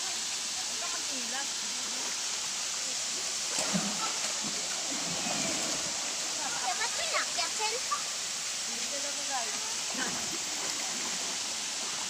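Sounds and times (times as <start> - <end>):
small waterfall rushing into pool: 0.0 - 12.0.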